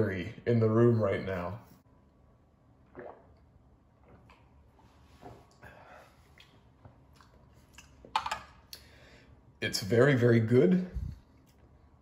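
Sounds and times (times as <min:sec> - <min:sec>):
sipping and swallowing drink: 0:02.8 - 0:08.0.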